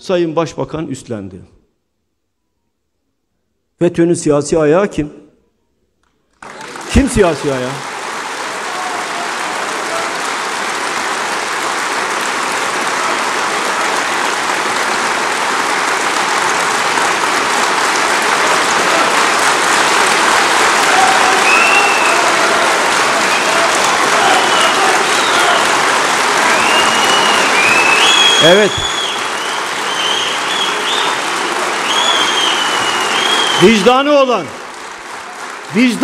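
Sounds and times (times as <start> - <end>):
audience applauding: 6.3 - 36.0
voices calling out: 20.8 - 29.0.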